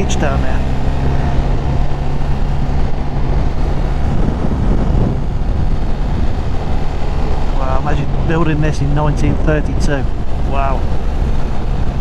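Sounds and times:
motorcycle engine humming: 0.0 - 12.0
wind noise on microphone: 0.0 - 12.0.

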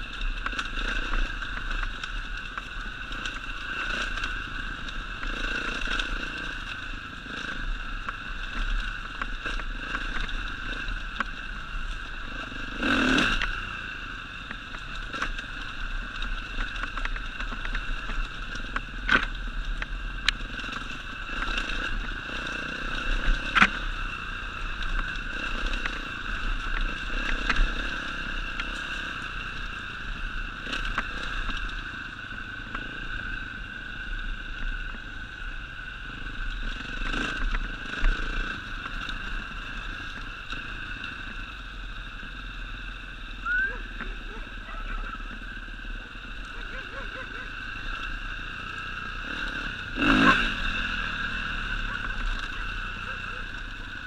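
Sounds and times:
dirt bike engine running: 0.0 - 54.0.

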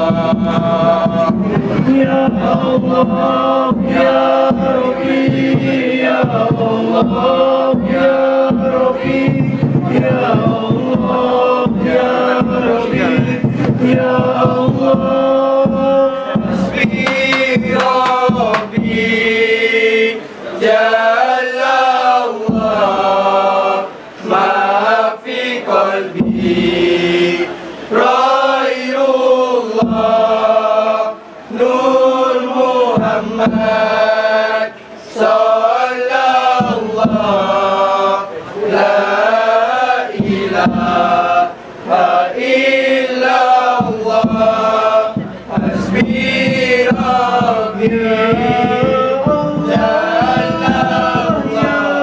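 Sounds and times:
men chanting in unison: 0.0 - 52.0.

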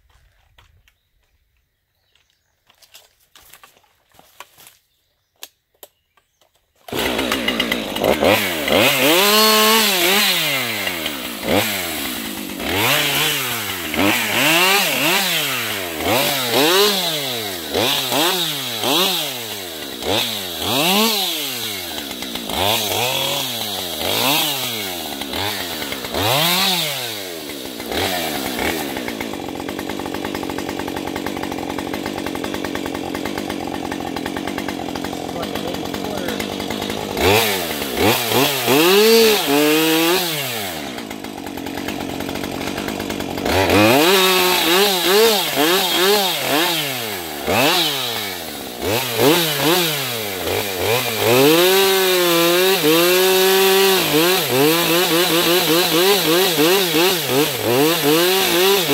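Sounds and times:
chainsaw revving: 6.9 - 58.9.

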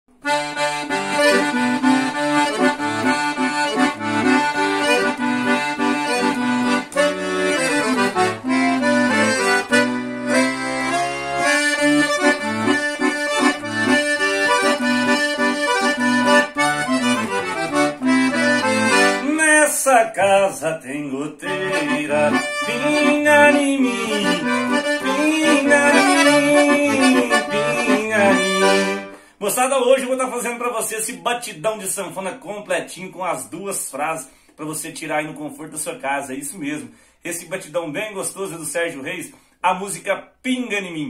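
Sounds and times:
accordion playing upbeat riff: 0.1 - 40.0.

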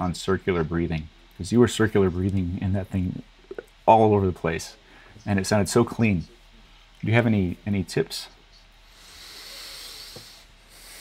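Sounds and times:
breathing close to microphone: 8.8 - 11.0.

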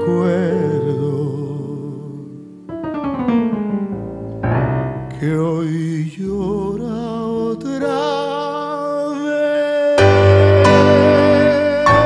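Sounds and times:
solo piano: 0.0 - 12.0.

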